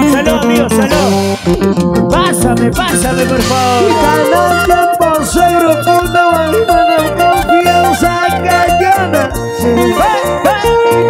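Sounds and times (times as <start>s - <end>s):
acoustic-electric guitar melody: 0.0s - 11.0s
bass line: 0.0s - 11.0s
drums: 0.0s - 11.0s
electric guitar: 0.0s - 11.0s
keyboard: 0.0s - 11.0s.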